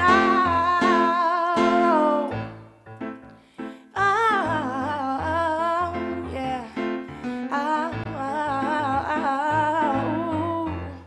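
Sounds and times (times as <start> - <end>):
woman singing with vibrato: 0.0 - 2.6, 3.8 - 11.0
keyboard accompaniment: 0.0 - 11.0.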